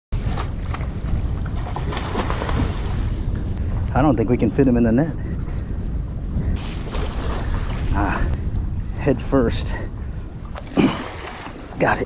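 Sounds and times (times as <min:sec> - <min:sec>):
wind rumble on microphone: 0:00.2 - 0:12.0.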